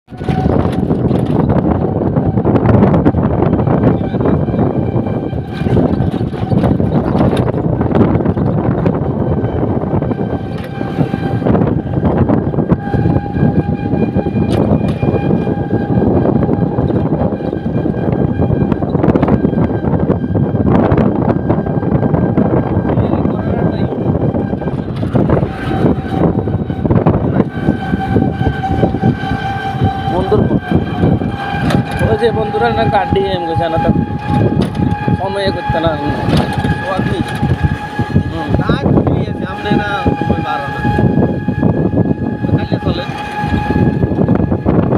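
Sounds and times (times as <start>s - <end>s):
high whine: 0.1s - 44.9s
vehicle rattling on rough road: 0.1s - 44.9s.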